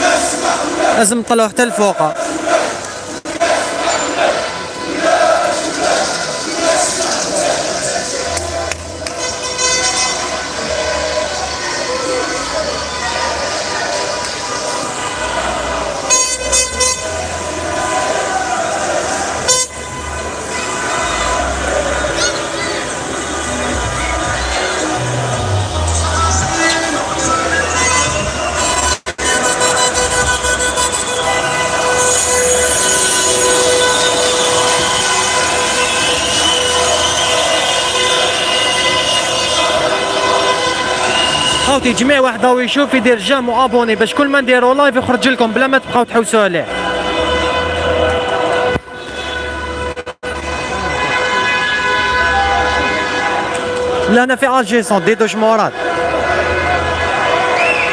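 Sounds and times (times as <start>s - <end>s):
street din: 0.0s - 57.9s
car horns honking: 3.4s - 57.9s.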